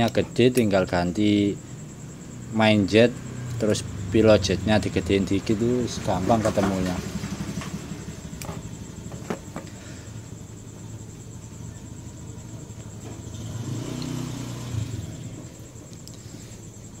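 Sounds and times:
low mechanical rumble: 0.1s - 13.6s.

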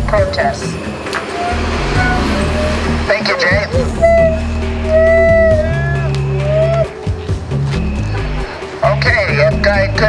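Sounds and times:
bus engine running: 0.0s - 10.0s
cars passing: 0.0s - 10.0s.

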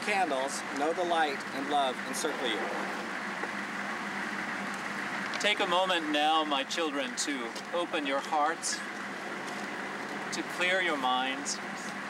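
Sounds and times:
hum of distant traffic: 0.0s - 12.0s.

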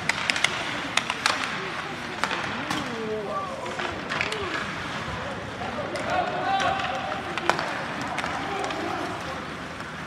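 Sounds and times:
ice rink background noise: 0.0s - 10.0s.

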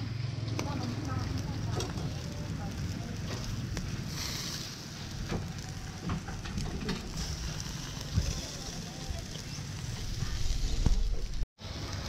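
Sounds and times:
steady low rumble: 0.0s - 12.0s
crackles and pops of embers: 0.4s - 12.0s
meat sizzling on grill: 0.4s - 12.0s.

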